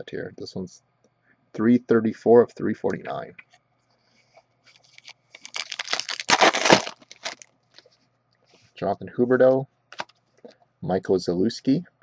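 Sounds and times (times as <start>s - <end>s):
wrapper torn and crinkled: 4.8s - 7.5s.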